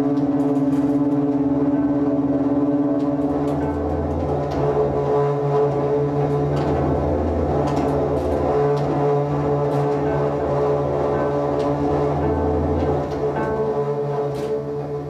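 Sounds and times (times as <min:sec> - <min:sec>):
cello droning: 0:00.0 - 0:15.0.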